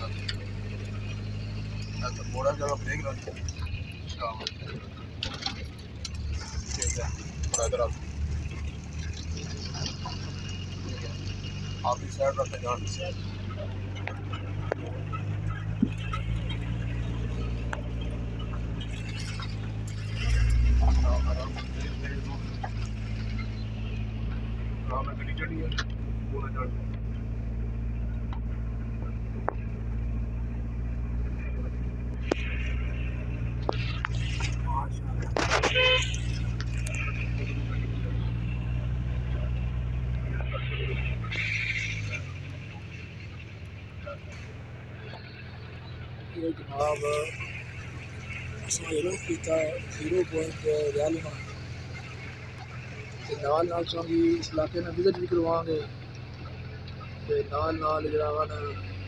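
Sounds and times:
car engine running: 0:00.0 - 0:59.0.

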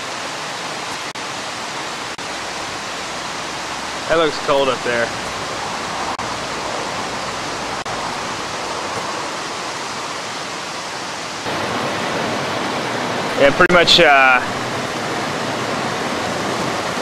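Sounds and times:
stream water rushing: 0:00.0 - 0:17.0.

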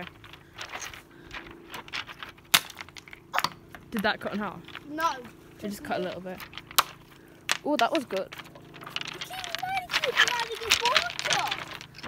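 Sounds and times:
pebbles clicking and crunching: 0:00.0 - 0:12.0.

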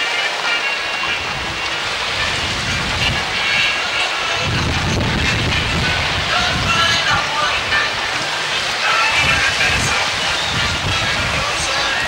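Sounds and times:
wind buffeting microphone: 0:01.0 - 0:12.0.

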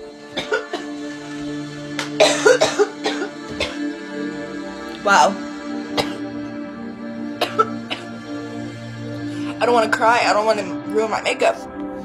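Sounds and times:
background music: 0:00.0 - 0:12.0
woman coughing: 0:00.3 - 0:01.2, 0:02.2 - 0:03.9, 0:05.8 - 0:06.4, 0:07.4 - 0:08.2.

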